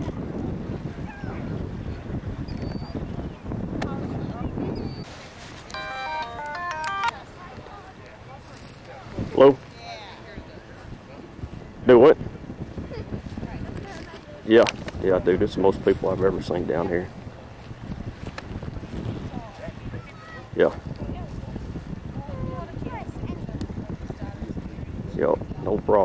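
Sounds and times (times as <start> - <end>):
wind buffeting microphone: 0.0 - 5.7, 7.1 - 26.0
electronic phone ringtone melody: 5.7 - 7.3.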